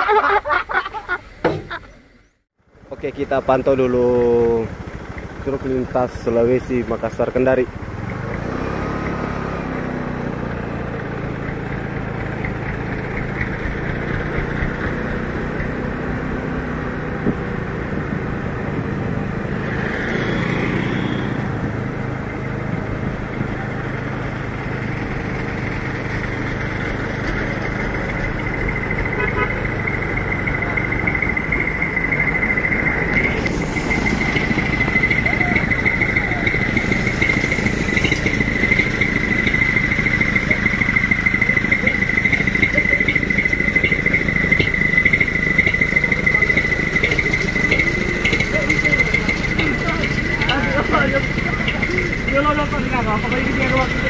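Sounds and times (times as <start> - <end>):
vehicle engine running: 1.9 - 54.0
steady high-pitched tone: 29.2 - 54.0.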